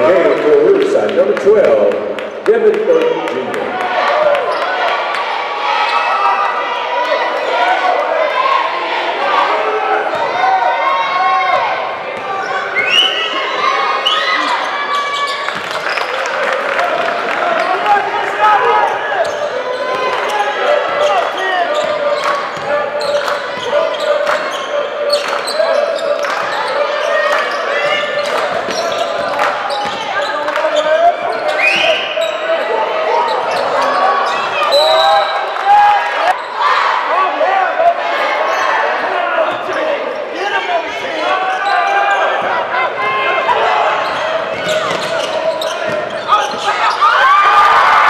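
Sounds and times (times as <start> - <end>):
hubbub of echoing voices: 0.0 - 48.0.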